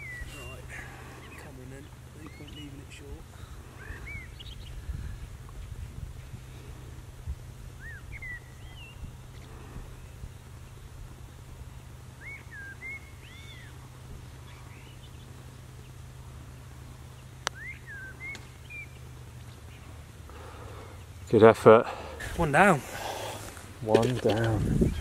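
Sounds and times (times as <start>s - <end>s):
small bird chirping: 0.0s - 3.0s, 7.8s - 10.3s, 12.2s - 20.0s.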